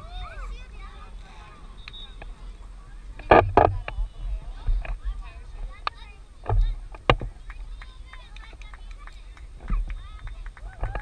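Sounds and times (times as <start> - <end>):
distant voices calling: 0.0 - 11.0
low rumbling on microphone: 0.0 - 11.0
loud thumps: 3.2 - 5.0.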